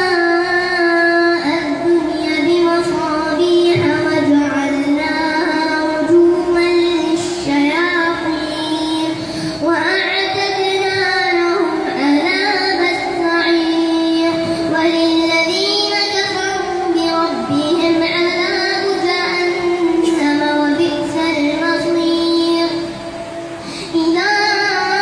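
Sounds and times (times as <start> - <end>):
boy chanting into a microphone: 0.0 - 23.0, 23.8 - 25.0.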